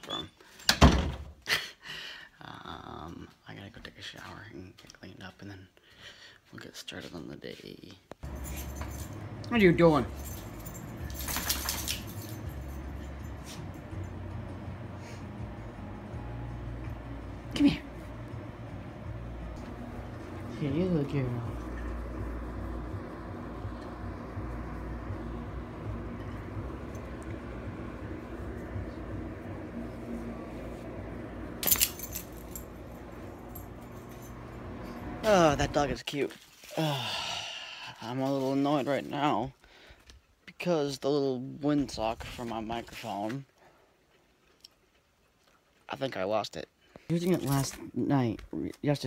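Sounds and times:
dog collar tags jingling: 0:08.2 - 0:14.1, 0:31.6 - 0:35.0
handling noise rumble: 0:08.2 - 0:35.9
steady low hum: 0:08.2 - 0:36.0.

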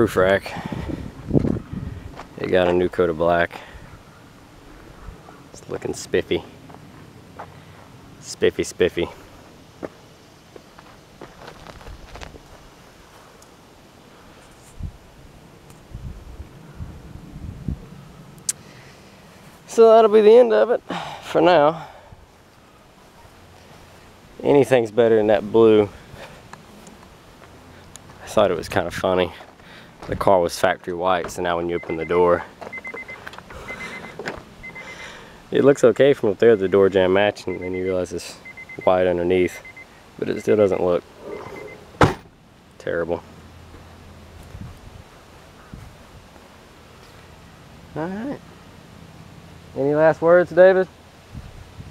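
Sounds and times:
footsteps on gravel: 0:01.4 - 0:02.9, 0:06.6 - 0:07.9, 0:09.8 - 0:13.3, 0:26.2 - 0:28.4, 0:29.2 - 0:33.5
car warning chime beeping: 0:31.7 - 0:35.0, 0:36.4 - 0:41.9.

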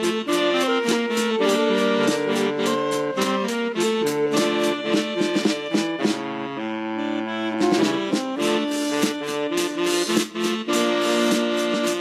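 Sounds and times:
drum and cymbal strokes: 0:00.0 - 0:06.4, 0:07.5 - 0:12.0
keytar chords: 0:00.0 - 0:12.0
saxophones: 0:00.0 - 0:12.0.

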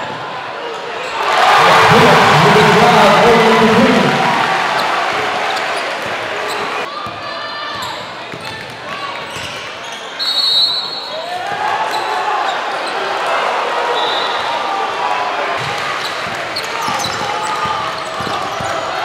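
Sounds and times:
crowd voices and shouting: 0:00.0 - 0:19.0
basketball bouncing on wooden court: 0:16.2 - 0:18.8.

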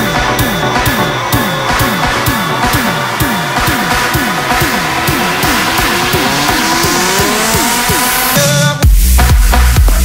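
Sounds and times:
rapid falling synth notes: 0:00.0 - 0:08.4
rising synth sweep: 0:00.0 - 0:08.4
loud bass drop: 0:00.0 - 0:10.0.

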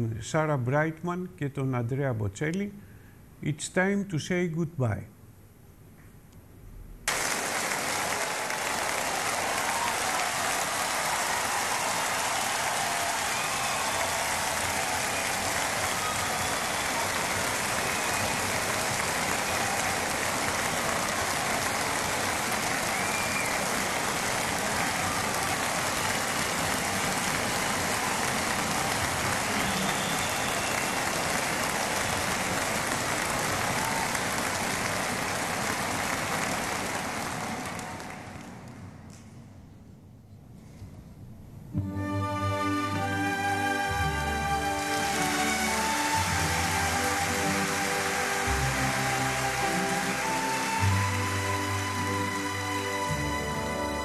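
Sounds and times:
audience applauding and cheering: 0:07.1 - 0:39.0, 0:42.0 - 0:54.0
whistles from crowd: 0:11.4 - 0:20.0, 0:22.7 - 0:27.1, 0:29.3 - 0:32.3.

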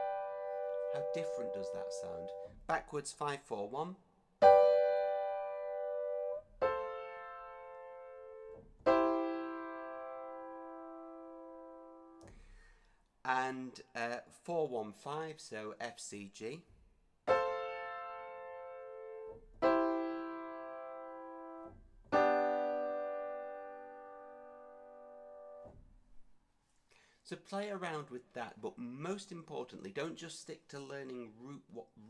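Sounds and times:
grand piano chord ringing: 0:00.0 - 0:02.5, 0:04.4 - 0:12.2, 0:17.3 - 0:25.7.

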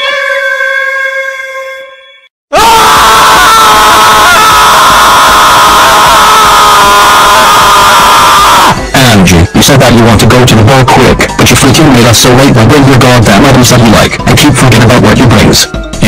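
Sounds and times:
voices screaming distorted: 0:02.5 - 0:14.2.

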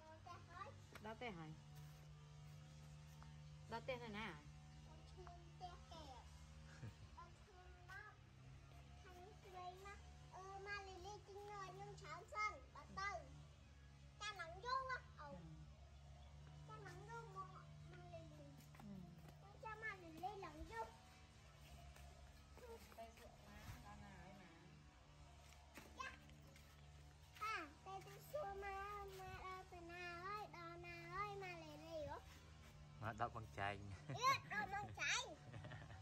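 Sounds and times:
faint low hum: 0:00.0 - 0:36.0.

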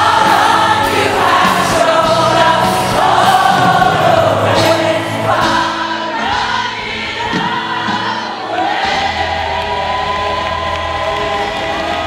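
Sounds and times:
ensemble singing in chorus: 0:00.0 - 0:12.0
musical backing: 0:00.0 - 0:12.0.

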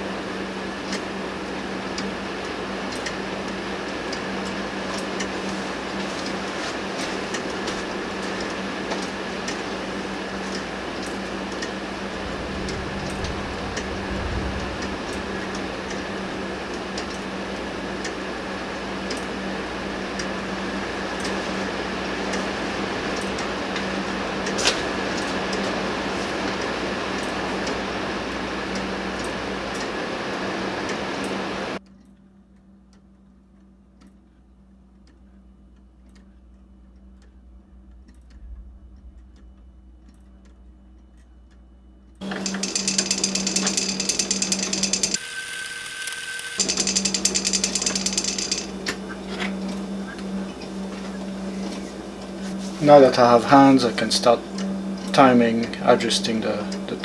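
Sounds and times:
steady hiss and hum: 0:00.0 - 0:57.0
pendulum clock ticking: 0:07.3 - 0:30.0, 0:31.8 - 0:45.2, 0:46.6 - 0:49.2.

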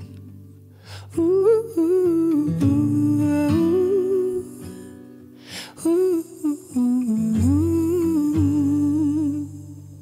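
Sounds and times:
soft guitar accompaniment: 0:00.0 - 0:10.0
man singing wordless ooh: 0:01.0 - 0:04.8, 0:05.7 - 0:10.0.

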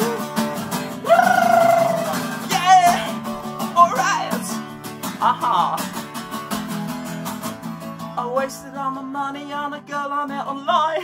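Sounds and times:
man singing rock: 0:00.0 - 0:04.6, 0:08.2 - 0:11.0
strummed acoustic guitar: 0:00.0 - 0:11.0.

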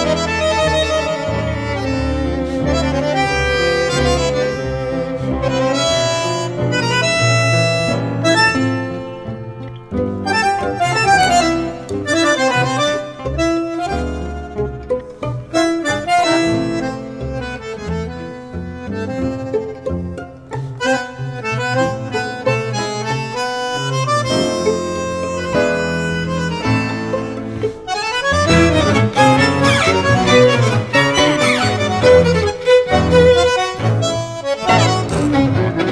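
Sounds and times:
bandoneon chords: 0:00.0 - 0:35.9
instrumental tango ensemble: 0:00.0 - 0:35.9.

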